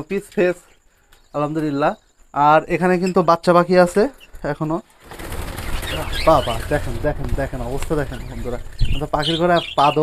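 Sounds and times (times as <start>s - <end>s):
faint bird chirps: 0.0s - 4.9s, 8.0s - 10.0s
birds wing flapping: 4.9s - 9.5s.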